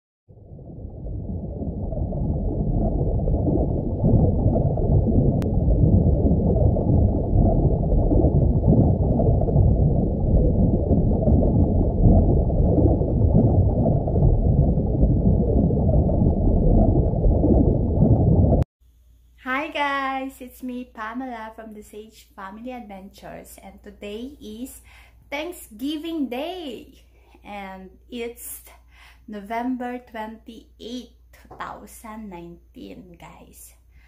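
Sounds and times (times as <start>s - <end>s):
muffled underwater rush: 0.3s - 18.7s.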